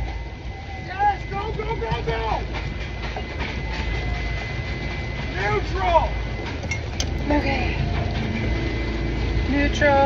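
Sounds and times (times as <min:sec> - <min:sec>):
boat engine rumbling: 0:00.0 - 0:10.0.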